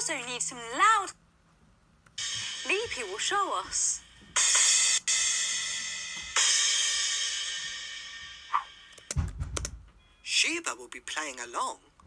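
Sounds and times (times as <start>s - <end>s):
loud cymbal crashes: 2.2s - 3.2s, 4.4s - 8.8s
low thump: 9.2s - 9.9s.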